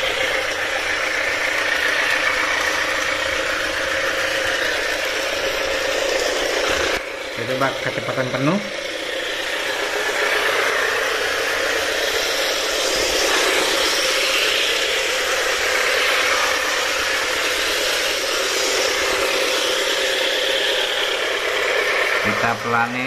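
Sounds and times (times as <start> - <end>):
model train motor whirring: 0.0 - 23.0
wheels rolling on rails: 0.0 - 23.0.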